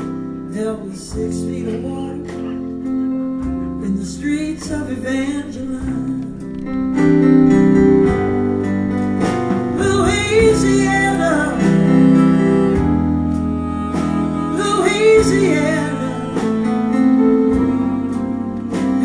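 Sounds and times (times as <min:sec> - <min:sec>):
bending guitar melody: 0:00.0 - 0:19.0
live band playing slow song: 0:00.0 - 0:19.0.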